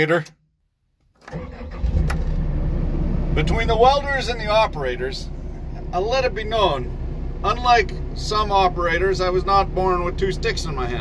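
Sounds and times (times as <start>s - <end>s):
diesel engine starting and idling: 1.2s - 11.0s.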